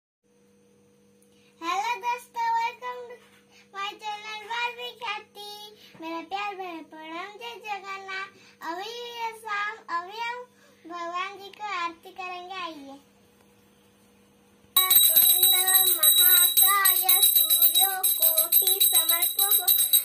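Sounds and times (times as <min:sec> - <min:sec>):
faint steady hum: 0:00.3 - 0:20.0
girl singing: 0:14.8 - 0:20.0.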